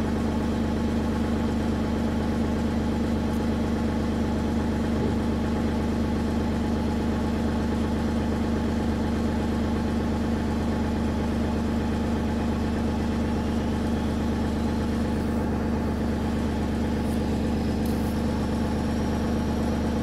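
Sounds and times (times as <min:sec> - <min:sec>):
diesel engine running steadily: 0:00.0 - 0:20.0
high-pressure pump: 0:13.4 - 0:20.0.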